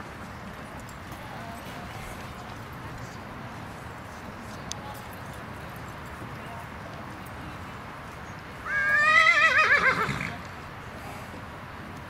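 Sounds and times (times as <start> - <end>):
steady outdoor hiss: 0.0 - 12.0
horse neighing: 8.7 - 10.4.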